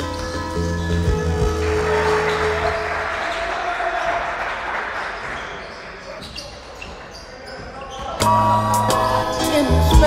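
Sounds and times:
background music with bass line: 0.0s - 2.7s.

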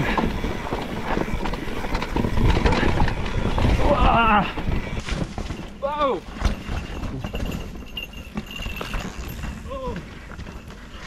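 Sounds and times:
bike tyres scrabbling over dirt: 0.0s - 11.0s.

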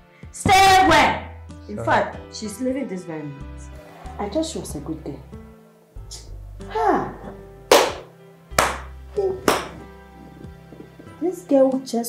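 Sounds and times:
music of sustained tones: 1.3s - 12.0s
loud hand claps: 7.7s - 9.8s.

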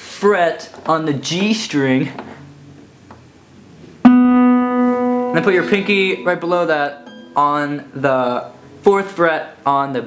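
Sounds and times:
acoustic guitar string plucked: 4.0s - 8.8s.

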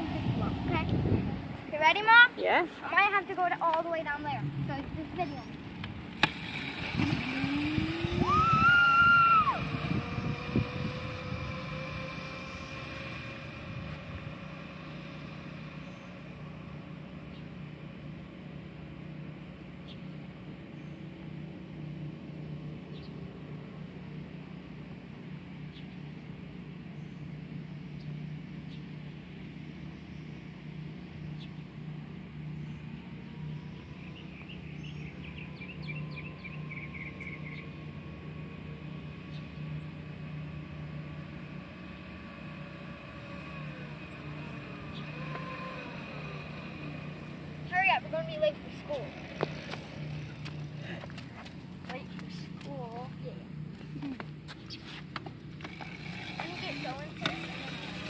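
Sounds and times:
steady low hum: 0.0s - 58.0s
electric dirt bike motor whine: 4.4s - 20.2s, 20.9s - 58.0s.

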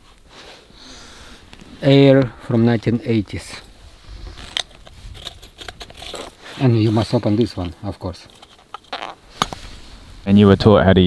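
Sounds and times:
hands handling metal canister: 4.3s - 9.7s.

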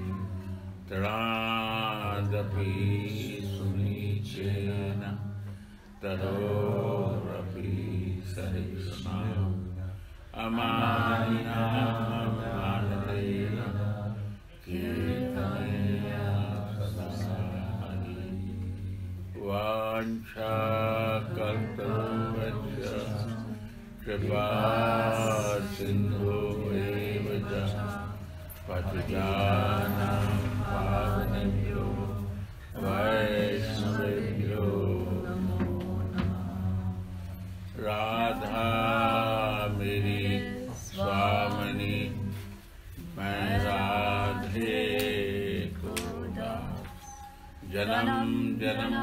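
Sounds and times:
person chanting a prayer: 0.0s - 49.0s
steady low hum: 0.0s - 49.0s.

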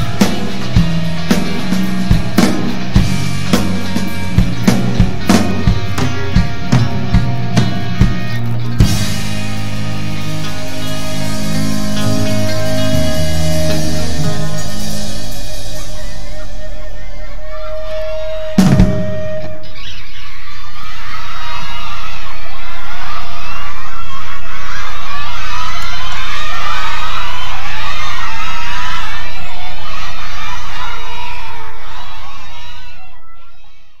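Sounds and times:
rock band final hit: 0.0s - 19.6s
audience cheering and screaming: 0.0s - 34.0s.

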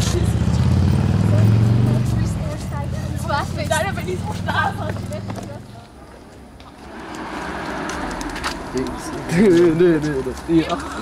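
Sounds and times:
vehicle engine passing by: 0.0s - 5.7s, 6.6s - 11.0s
people talking and calling out: 0.0s - 11.0s.

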